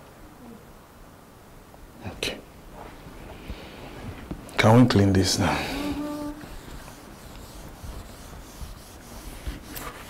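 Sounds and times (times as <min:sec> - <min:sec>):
eraser rubbing on whiteboard: 0:05.8 - 0:10.0.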